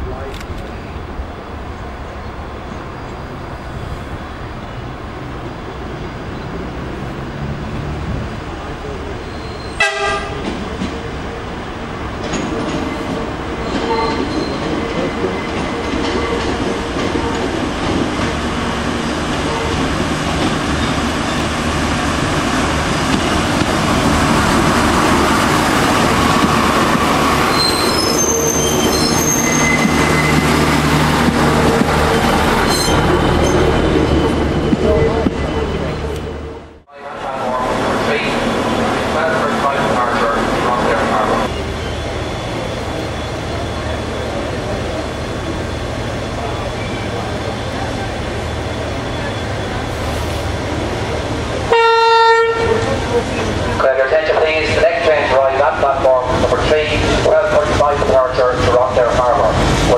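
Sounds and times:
diesel railcar passing: 0:00.0 - 0:59.9
wheel squeal: 0:09.2 - 0:09.8, 0:13.6 - 0:14.7, 0:27.4 - 0:30.5, 0:32.6 - 0:36.2
train horn toot: 0:09.6 - 0:10.4, 0:51.7 - 0:52.9.

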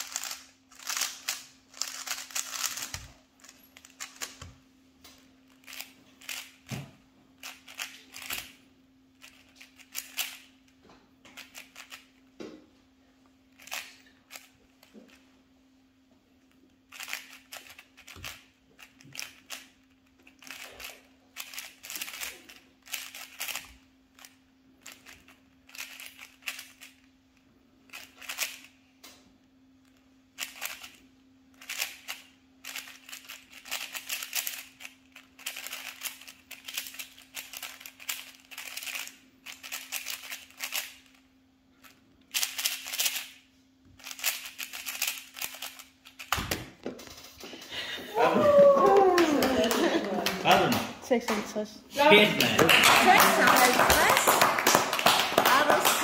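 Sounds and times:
speed cube clicking: 0:00.0 - 0:04.5, 0:05.6 - 0:06.6, 0:07.4 - 0:08.6, 0:09.2 - 0:10.5, 0:11.4 - 0:12.1, 0:13.6 - 0:14.5, 0:16.9 - 0:27.0, 0:27.9 - 0:28.7, 0:30.4 - 0:31.0, 0:31.6 - 0:41.2, 0:42.3 - 0:43.4, 0:44.0 - 0:46.4.

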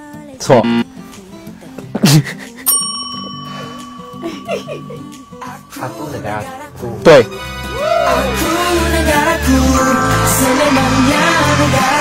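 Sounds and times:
desk call bell ding: 0:02.7 - 0:06.6.

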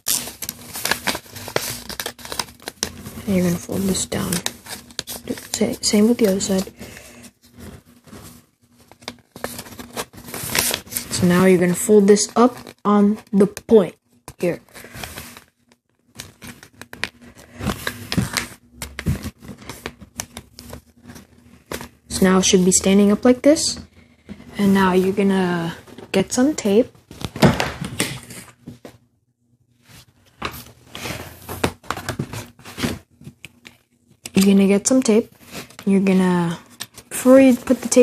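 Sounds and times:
tape dispenser handling noise: 0:00.0 - 0:03.1
paper folding and rustling: 0:00.0 - 0:22.6, 0:29.9 - 0:38.0.

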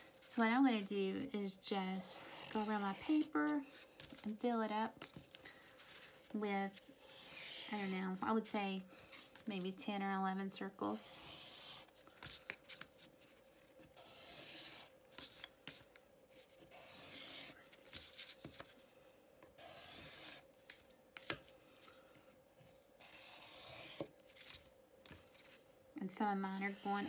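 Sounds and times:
marker scratching on paper: 0:11.1 - 0:11.9, 0:14.0 - 0:15.3, 0:16.7 - 0:17.6, 0:19.6 - 0:20.4, 0:23.0 - 0:24.0.

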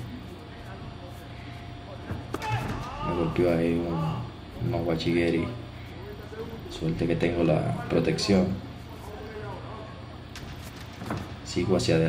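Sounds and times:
man speaking: 0:02.9 - 0:10.0.

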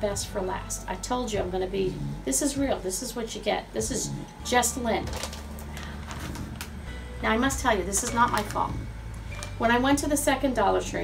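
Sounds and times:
low steady hum: 0:00.0 - 0:11.0
plastic bag rustling: 0:05.0 - 0:06.9, 0:07.6 - 0:09.7.

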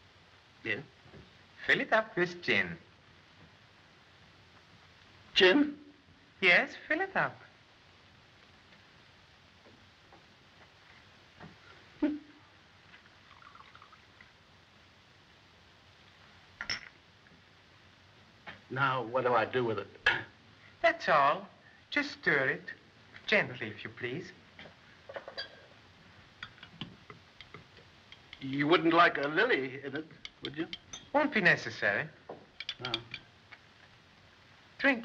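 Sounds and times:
liquid trickling into glass: 0:13.2 - 0:14.2
spoon clinking against glass: 0:25.3 - 0:25.6, 0:30.2 - 0:31.1, 0:32.6 - 0:33.2.

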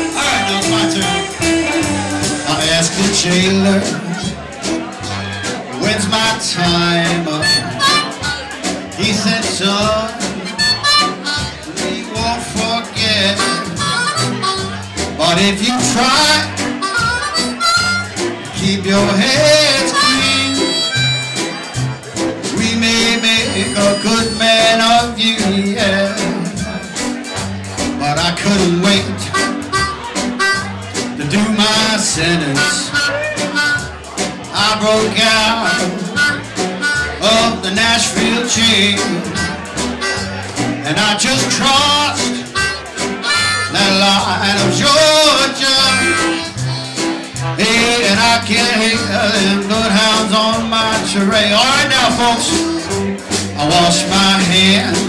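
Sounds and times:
amplified harmonica solo: 0:00.0 - 0:02.5, 0:07.4 - 0:08.6, 0:10.4 - 0:11.6, 0:13.4 - 0:15.0, 0:16.6 - 0:18.4, 0:19.7 - 0:22.0, 0:23.0 - 0:24.5, 0:29.2 - 0:30.9, 0:32.5 - 0:34.1, 0:35.6 - 0:37.4, 0:39.1 - 0:40.5, 0:42.2 - 0:44.2, 0:45.7 - 0:47.5
live band playing: 0:00.0 - 0:55.0.

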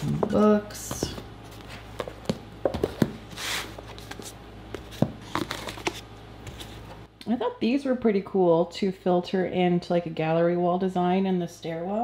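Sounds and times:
books sliding rustle: 0:01.0 - 0:07.0.

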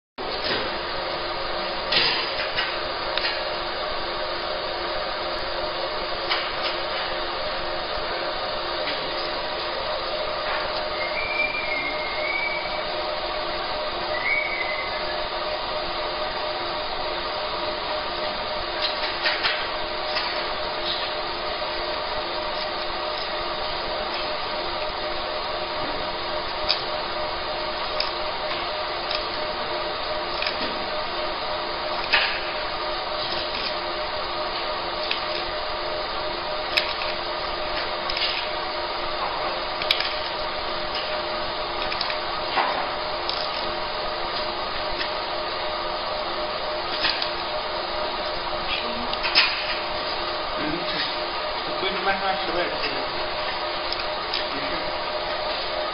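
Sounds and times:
laser marking machine humming: 0:00.2 - 0:55.9.

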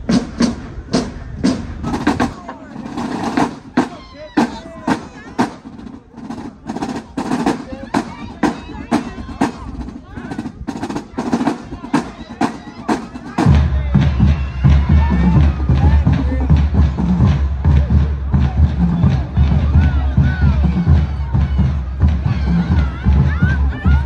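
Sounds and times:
marching drumline cadence: 0:00.0 - 0:24.0.

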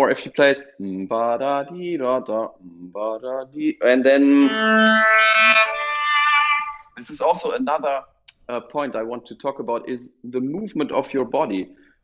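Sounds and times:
bowed cello notes: 0:03.8 - 0:07.5.

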